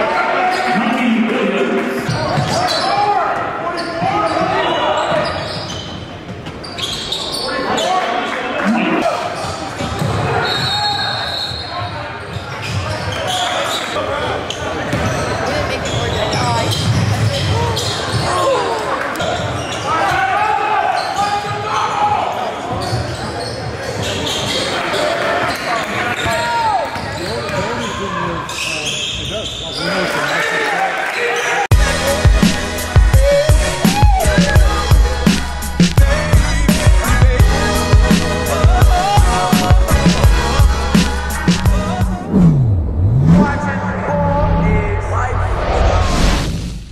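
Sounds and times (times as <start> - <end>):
music with a beat: 31.7 - 42.2.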